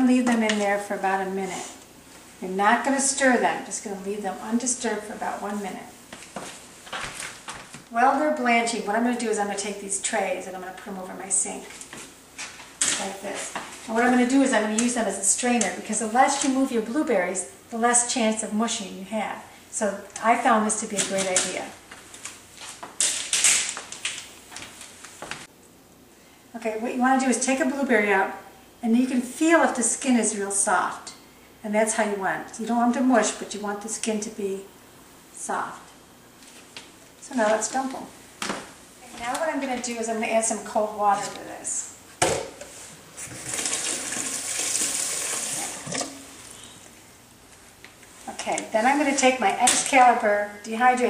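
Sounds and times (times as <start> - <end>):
faucet water filling a pot: 43.4 - 46.4.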